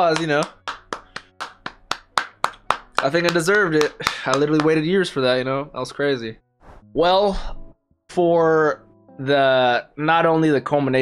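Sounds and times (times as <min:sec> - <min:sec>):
person clapping hands: 0:00.0 - 0:04.9.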